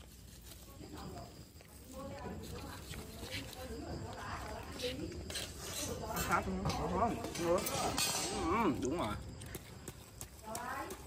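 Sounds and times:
voices talking: 0.6 - 9.6.

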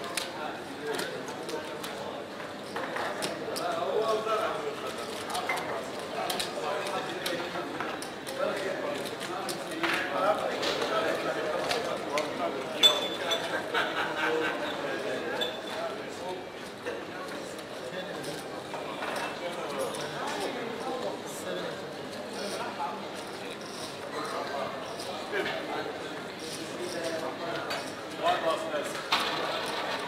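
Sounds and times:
murmur of voices: 0.0 - 30.0.

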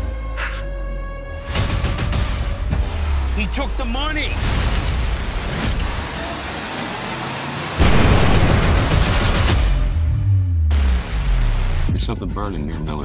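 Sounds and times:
sudden loud hit: 7.8 - 11.8
low bass notes: 7.8 - 13.0.

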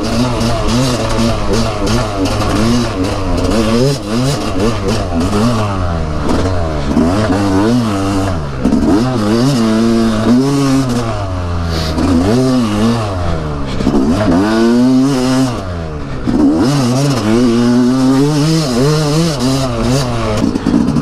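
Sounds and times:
dirt bike engine revving: 0.0 - 21.0
rattles and scrapes: 0.0 - 21.0.

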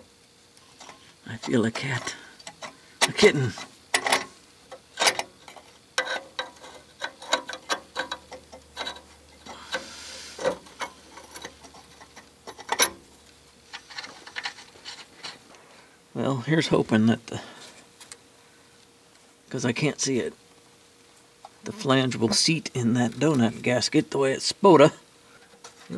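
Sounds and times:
metal clinks and scrapes: 5.0 - 13.1, 13.7 - 15.5.

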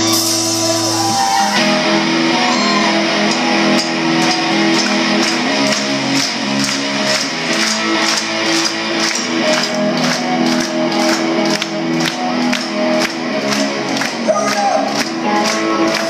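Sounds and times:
drums beating: 0.0 - 16.0
electric guitars and bass: 0.0 - 16.0.

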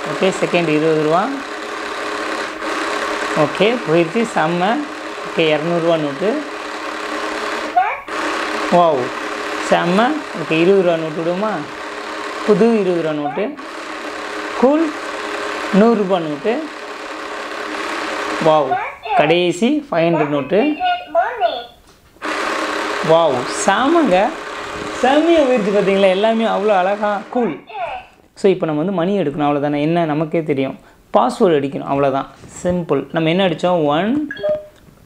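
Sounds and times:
banknote drawn through slot: 0.0 - 18.6
small electric motor running: 0.0 - 19.4, 22.2 - 27.6.

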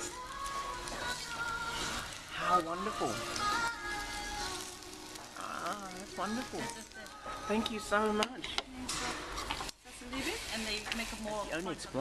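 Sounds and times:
quiet background music: 0.0 - 12.0
rice sizzling and crackling: 0.0 - 12.0.

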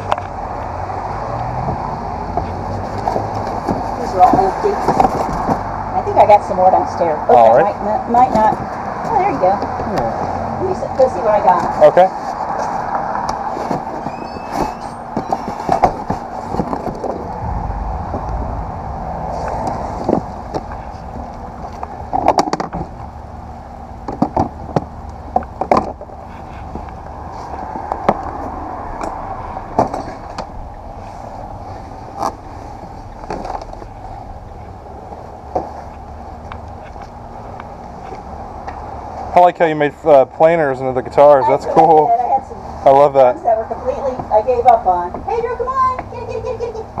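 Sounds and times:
steady background hum: 2.1 - 47.0
knocks and bumps of boxes handled: 2.3 - 5.7, 11.5 - 17.3.

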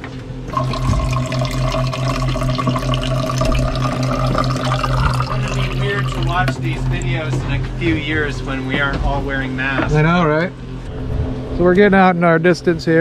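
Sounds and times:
low pulsing hum: 0.1 - 11.9
water running into metal cup: 0.5 - 7.2.

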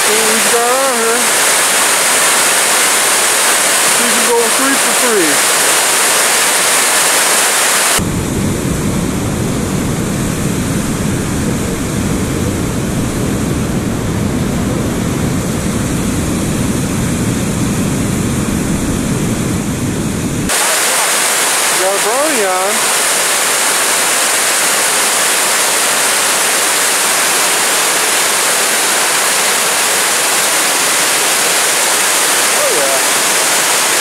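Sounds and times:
water roaring over spillway: 0.0 - 18.2, 20.5 - 34.0.

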